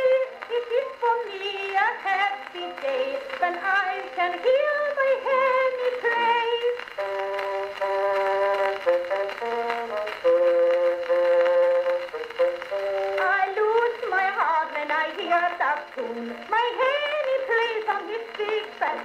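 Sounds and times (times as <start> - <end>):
woman singing: 0.0 - 19.0.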